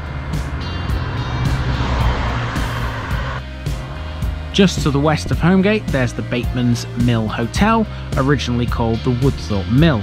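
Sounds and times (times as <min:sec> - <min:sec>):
car passing on road: 0:00.0 - 0:05.9
background music: 0:00.0 - 0:10.0.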